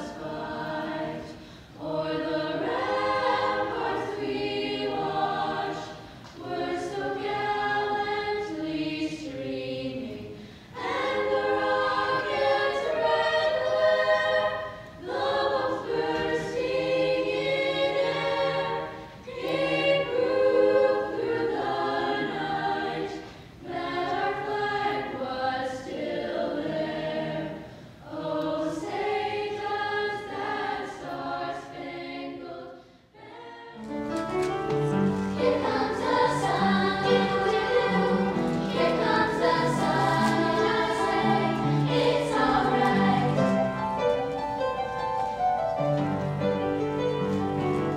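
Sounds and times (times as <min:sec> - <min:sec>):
children's choir singing: 0:00.0 - 0:47.9.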